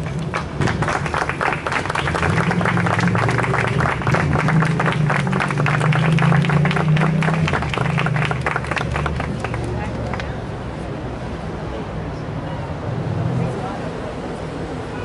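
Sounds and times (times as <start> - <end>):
audience applauding: 0.0 - 10.3.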